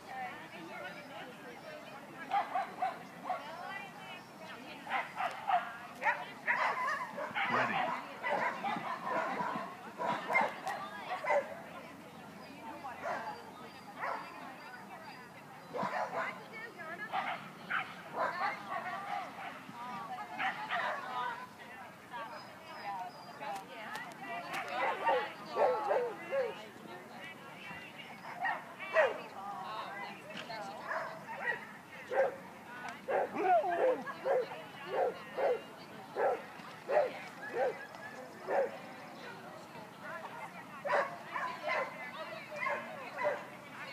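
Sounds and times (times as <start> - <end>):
dog barking: 4.9 - 10.6, 11.2 - 11.5, 14.0 - 14.3, 15.8 - 16.3, 30.8 - 32.4, 33.1 - 35.6, 36.2 - 37.8, 38.5 - 38.7, 40.9 - 42.0, 42.6 - 43.5.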